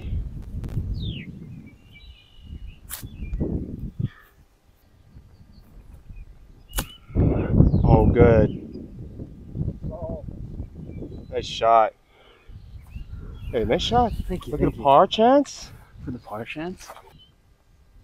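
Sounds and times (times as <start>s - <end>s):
wind rumbling on microphone: 0.0s - 18.0s
bird chirping: 0.8s - 9.7s, 10.5s - 17.4s.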